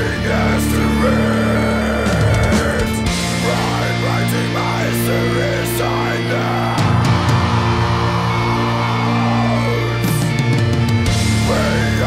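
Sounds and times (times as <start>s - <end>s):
metal music with distorted guitars: 0.0s - 12.0s.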